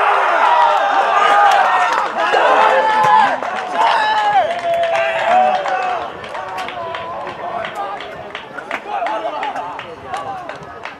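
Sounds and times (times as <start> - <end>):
players shouting and calling: 0.0 - 10.9.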